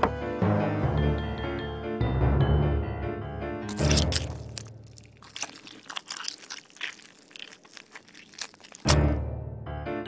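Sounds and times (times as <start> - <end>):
wet crunching and crackling: 3.7 - 9.2.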